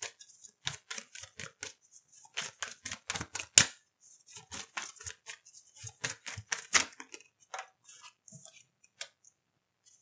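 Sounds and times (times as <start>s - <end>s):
cards being shuffled: 0.0s - 9.2s.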